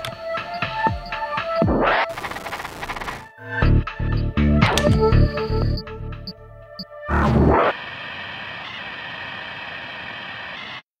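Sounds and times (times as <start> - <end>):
electronic static hiss: 2.0 - 3.2.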